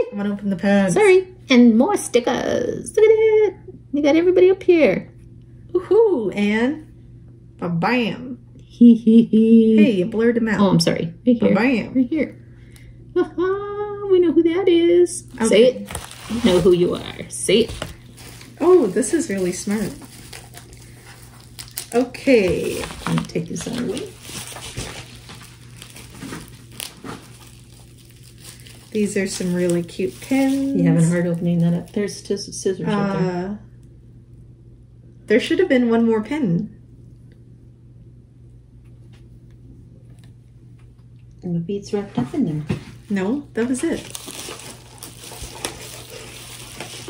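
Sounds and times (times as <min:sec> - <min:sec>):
bubble wrap crinkling: 0:15.3 - 0:32.5, 0:43.0 - 0:47.0.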